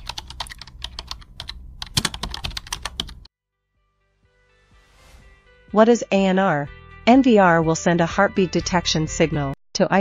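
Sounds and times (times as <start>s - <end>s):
keyboard typing clicks: 0.0s - 3.3s.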